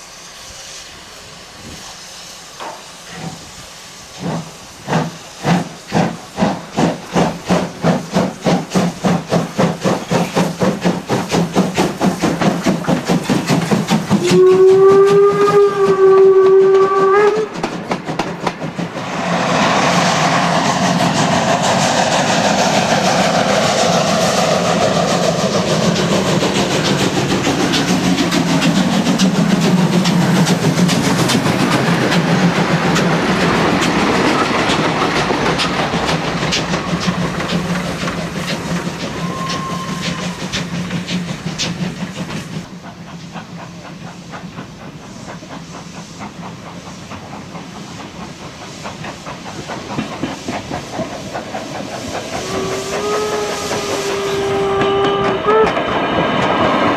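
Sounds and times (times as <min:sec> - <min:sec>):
steam hissing: 0:00.0 - 0:56.9.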